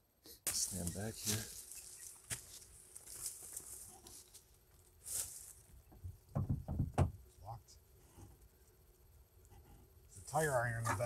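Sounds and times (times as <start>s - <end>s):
footsteps through dry leaves: 0.5s - 5.6s
leaves rustling: 0.5s - 5.8s.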